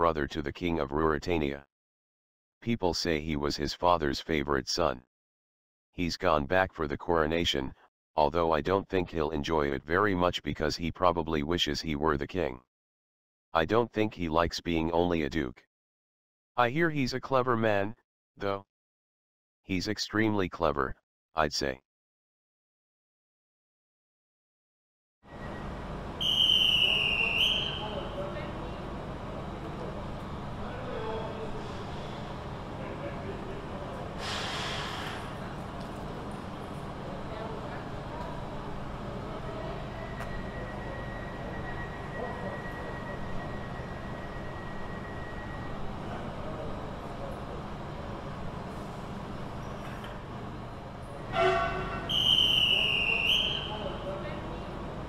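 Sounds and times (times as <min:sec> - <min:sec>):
busy railway platform background: 0:25.3 - 0:55.0
high railway whistle: 0:26.2 - 0:28.0, 0:51.3 - 0:53.7
high-pitched train whistle: 0:26.2 - 0:28.2, 0:40.0 - 0:45.7, 0:51.3 - 0:53.7
short train toot: 0:51.3 - 0:53.4.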